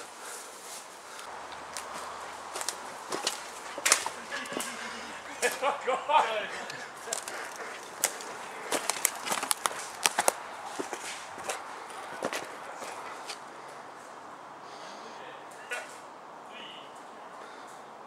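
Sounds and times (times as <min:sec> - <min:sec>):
footsteps through undergrowth: 0:00.0 - 0:05.8, 0:06.5 - 0:14.1
twigs snapping and crunching: 0:01.2 - 0:04.8, 0:06.7 - 0:13.5.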